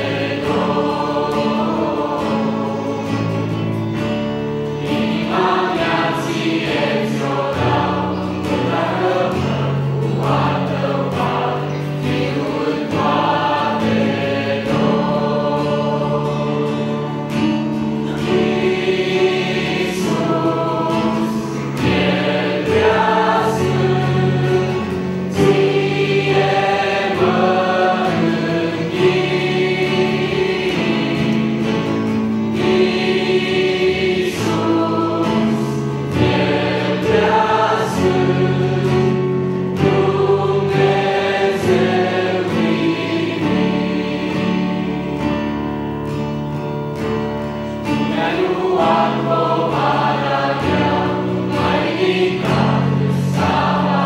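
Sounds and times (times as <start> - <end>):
acoustic guitar: 0.0 - 54.0
youth choir singing a hymn: 0.0 - 54.0.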